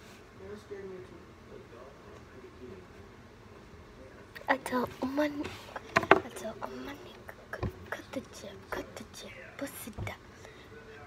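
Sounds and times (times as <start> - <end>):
whispering voices: 4.0 - 11.0.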